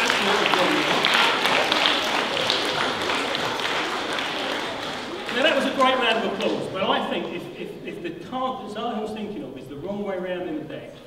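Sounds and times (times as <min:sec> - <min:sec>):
audience applauding: 0:00.0 - 0:07.5.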